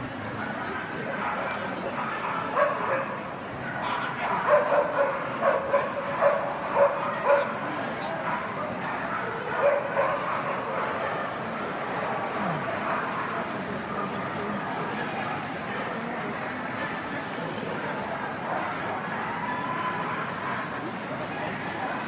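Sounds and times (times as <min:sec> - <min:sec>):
crowd murmur: 0:00.0 - 0:22.0
dog barking: 0:01.2 - 0:03.2, 0:04.3 - 0:07.6, 0:08.3 - 0:11.0.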